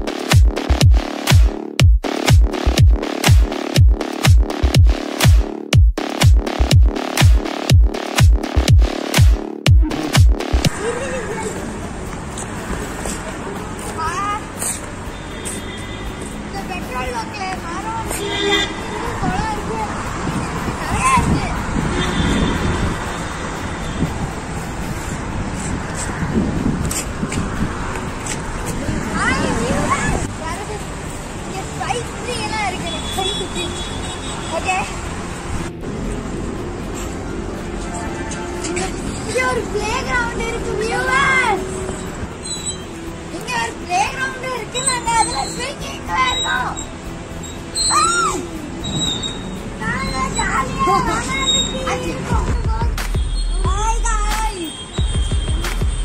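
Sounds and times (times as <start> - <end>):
road traffic rumble: 0.0 - 56.0
child squealing: 44.8 - 46.9, 47.7 - 52.1.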